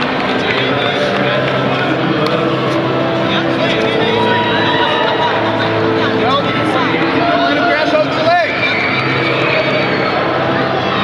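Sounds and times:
crowd of voices talking: 0:00.0 - 0:11.0.

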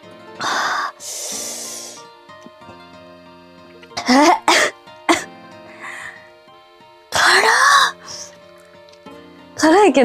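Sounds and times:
soft background music: 0:00.0 - 0:10.0
woman coughing: 0:04.0 - 0:05.3.

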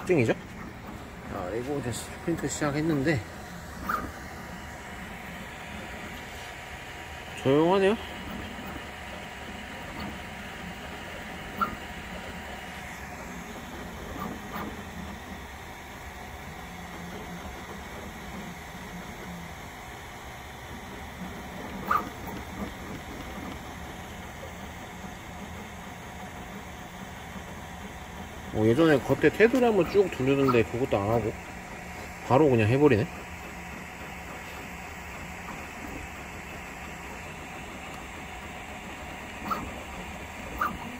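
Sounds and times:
printer motors and fan humming: 0:00.0 - 0:40.9.

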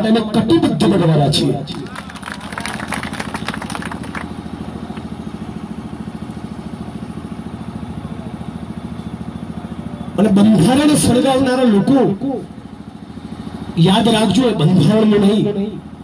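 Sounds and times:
small engine idling: 0:01.7 - 0:16.0.

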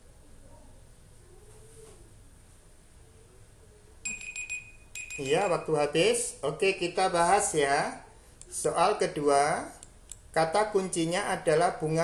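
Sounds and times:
timer alarm pulsing ringing tone: 0:04.0 - 0:05.8.

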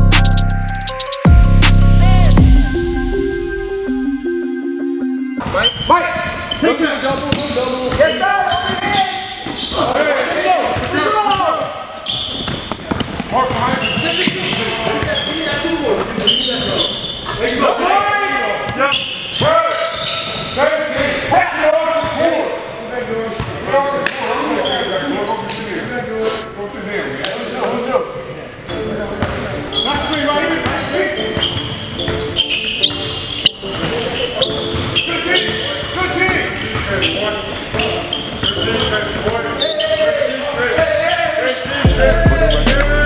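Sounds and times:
players calling out: 0:00.0 - 0:04.8, 0:41.7 - 0:43.0.

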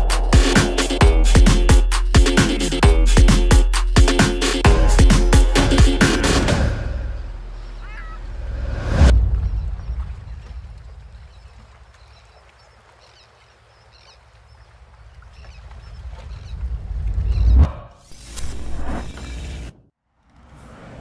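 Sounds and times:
rising swell: 0:00.0 - 0:01.9
deep boom: 0:08.6 - 0:10.8.

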